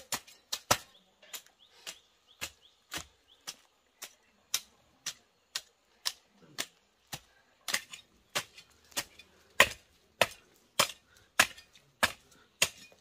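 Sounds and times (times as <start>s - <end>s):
metal rake striking dry soil: 0.0s - 13.0s.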